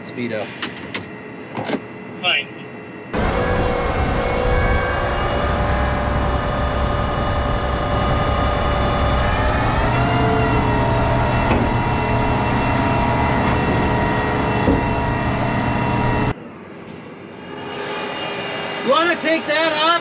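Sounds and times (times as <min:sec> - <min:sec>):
tractor diesel engine running: 0:03.2 - 0:16.3.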